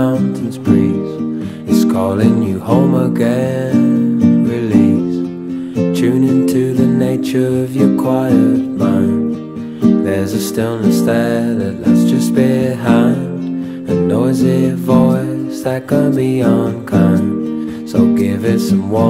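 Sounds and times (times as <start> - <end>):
folk song with acoustic guitar: 0.0 - 19.0.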